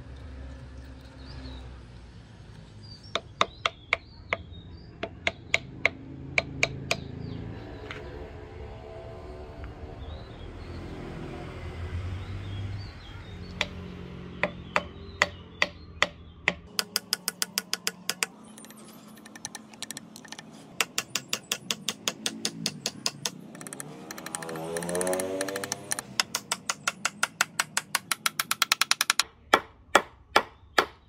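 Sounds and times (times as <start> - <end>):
hammer tapping wooden wedge: 3.2 - 7.1, 13.6 - 13.8, 14.4 - 31.0
rising and falling pitched sound: 23.4 - 26.2.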